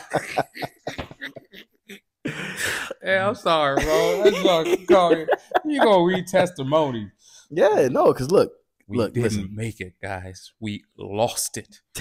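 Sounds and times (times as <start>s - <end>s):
man laughing hard: 0.0s - 1.8s, 3.8s - 6.4s.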